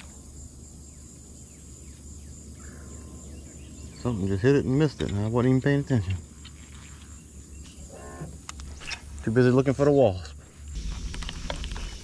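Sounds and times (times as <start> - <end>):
insects chirping: 0.0 - 12.0
low rumble: 10.7 - 12.0.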